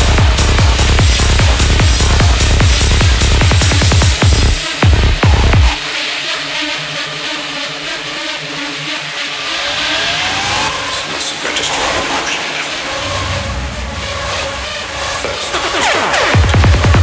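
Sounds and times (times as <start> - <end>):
deep bass: 0.0 - 5.8
fast pulsing synth line: 0.0 - 17.0
rising synth sweep: 8.4 - 16.4.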